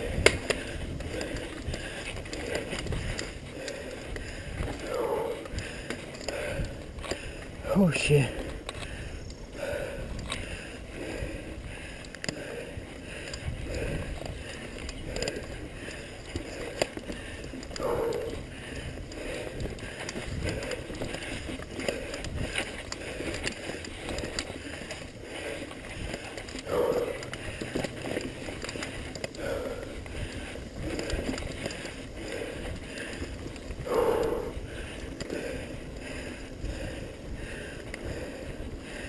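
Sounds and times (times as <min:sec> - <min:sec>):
bike tyres rumbling and rattling: 0:00.0 - 0:39.0.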